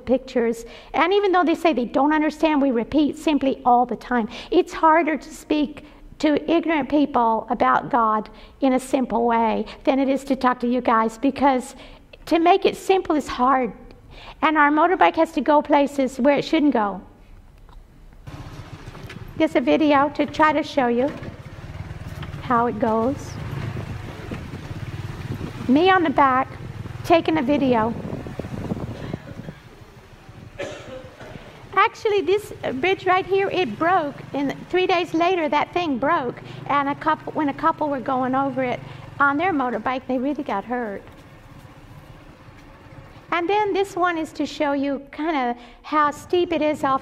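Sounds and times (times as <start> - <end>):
motorbike engine running: 18.2 - 44.3.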